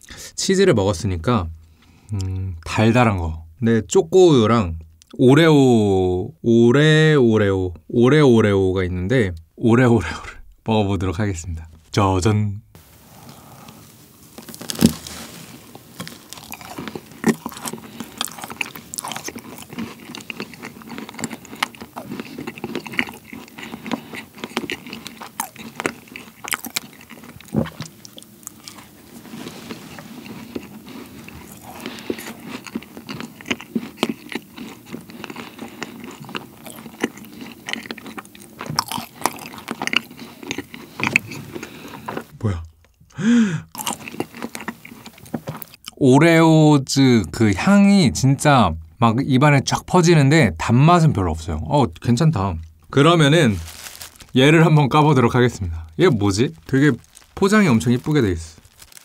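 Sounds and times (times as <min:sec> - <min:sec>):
chewing and crunching: 0:13.2 - 0:43.1, 0:43.7 - 0:46.0, 0:52.6 - 0:59.0
biting into a macaron: 0:14.4 - 0:29.0, 0:29.9 - 0:42.3, 0:56.0 - 0:59.0.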